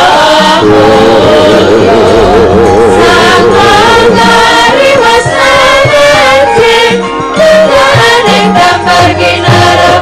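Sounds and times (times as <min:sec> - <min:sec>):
women singing together: 0:00.0 - 0:10.0
gamelan ensemble playing: 0:00.4 - 0:10.0.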